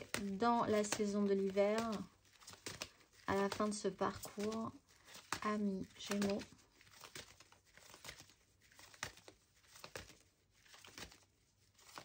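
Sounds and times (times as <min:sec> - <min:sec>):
cards shuffling: 0:00.0 - 0:12.0.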